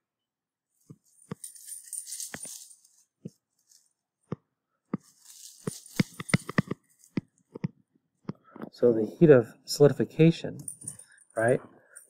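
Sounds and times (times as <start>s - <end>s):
stylus tapping on tablet screen: 6.0s - 8.6s.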